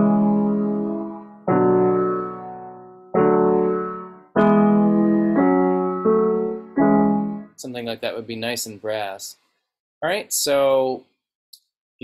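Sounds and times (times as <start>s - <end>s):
piano chords: 0.0s - 7.8s.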